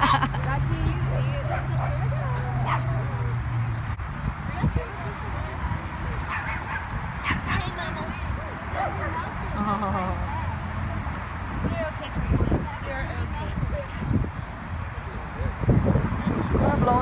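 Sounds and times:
people talking: 0.0 - 3.4, 4.2 - 6.4, 7.3 - 11.0, 11.6 - 17.0.

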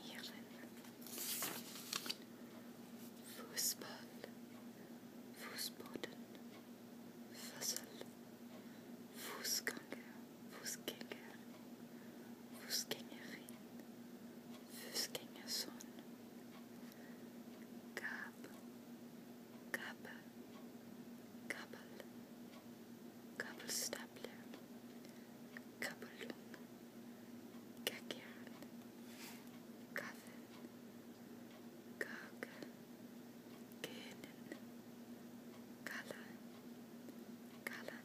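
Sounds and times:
person whispering: 0.0 - 0.8, 3.2 - 4.4, 5.4 - 6.2, 7.3 - 8.1, 9.2 - 11.4, 12.6 - 13.6, 14.7 - 16.0, 18.0 - 18.6, 19.8 - 20.3, 21.5 - 22.1, 23.4 - 24.6, 25.8 - 26.6, 27.9 - 28.6, 29.9 - 30.4, 32.0 - 32.7, 33.8 - 34.6, 35.8 - 36.4, 37.6 - 38.0
faint steady hum: 0.0 - 38.0.

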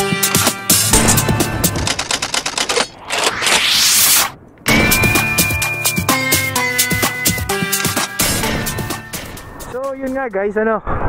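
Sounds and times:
sharp typing-like clicks: 1.7 - 2.9
rising whoosh: 2.8 - 6.7.

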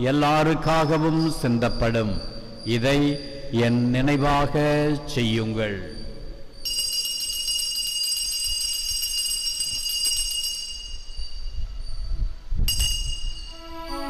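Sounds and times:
altar bells ringing: 0.1 - 14.0.

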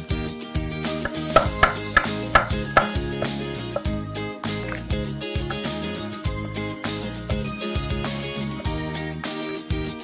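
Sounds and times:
guitar music: 0.8 - 6.8
knife chopping on wooden board: 1.0 - 3.9.

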